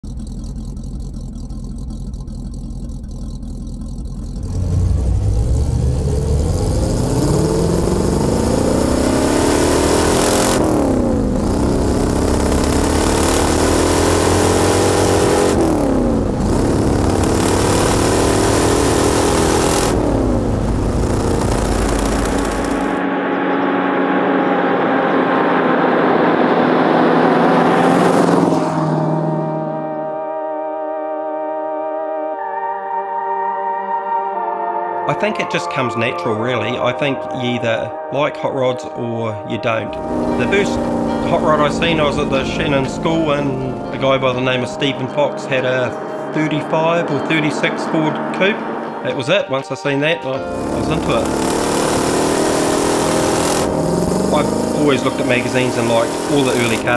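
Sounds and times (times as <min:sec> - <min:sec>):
car engine accelerating through gears: 0:00.0 - 0:31.0, 0:39.8 - 0:49.3, 0:50.4 - 0:56.9.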